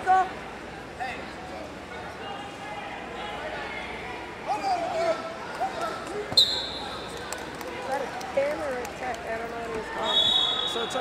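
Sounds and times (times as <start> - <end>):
scattered voices in a hall: 0.0 - 11.0
referee whistle blast: 6.4 - 6.9, 10.0 - 10.9.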